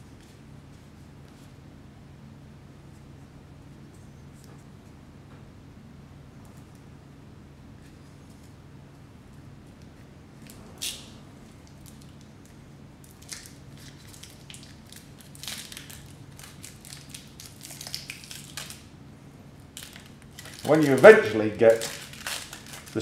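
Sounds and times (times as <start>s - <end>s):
low steady hum: 0.0s - 23.0s
film crinkling and rustling: 9.9s - 18.9s, 19.6s - 23.0s.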